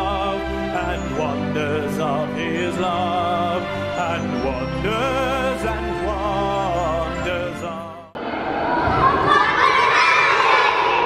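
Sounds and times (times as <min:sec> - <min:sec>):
girls shouting and cheering: 0:08.4 - 0:11.0.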